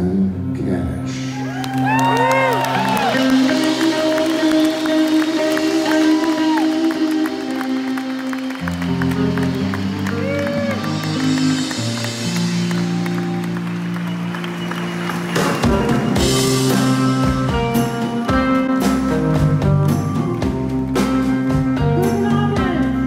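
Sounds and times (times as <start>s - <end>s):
live band playing slow chords: 0.0s - 23.0s
audience applause: 1.4s - 17.1s
whistles and whoops: 4.2s - 11.2s.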